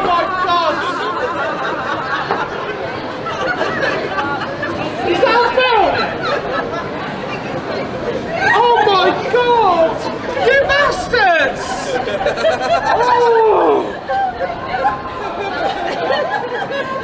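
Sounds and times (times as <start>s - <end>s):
background chatter: 0.0s - 17.0s
man exclaiming and talking: 8.5s - 12.0s, 12.9s - 14.0s.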